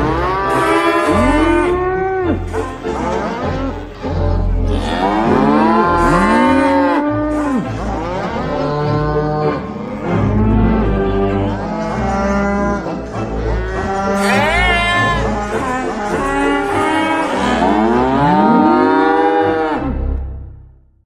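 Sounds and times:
pipe organ chords swooping in pitch: 0.0 - 20.6.

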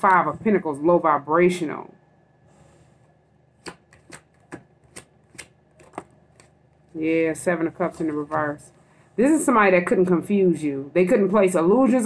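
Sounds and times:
cards being shuffled: 3.6 - 7.0.

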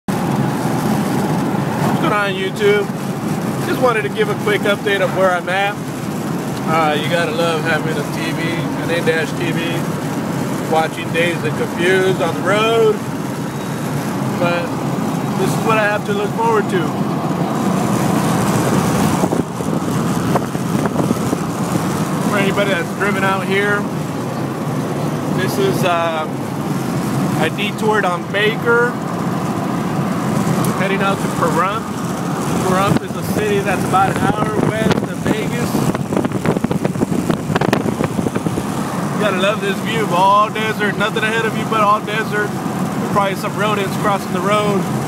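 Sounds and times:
car cabin road noise: 0.1 - 45.0.

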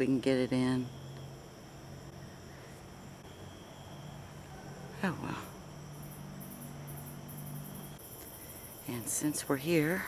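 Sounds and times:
crickets chirping: 0.0 - 10.0
steady low hum: 0.0 - 10.0.

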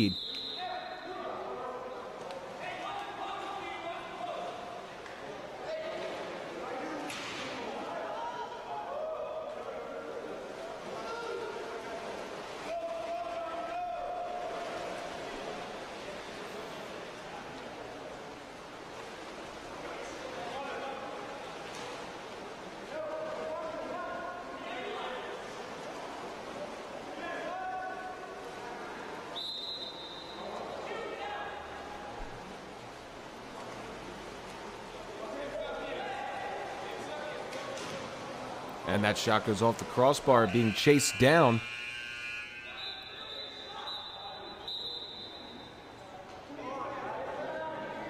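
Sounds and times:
players and coaches shouting: 0.0 - 1.0, 38.9 - 44.5
sharp slaps on water: 7.0 - 7.7.

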